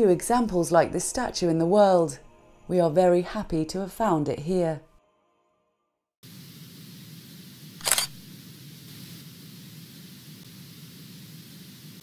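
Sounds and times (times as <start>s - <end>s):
background hiss: 6.2s - 12.0s
camera shutter clicks: 7.8s - 8.2s.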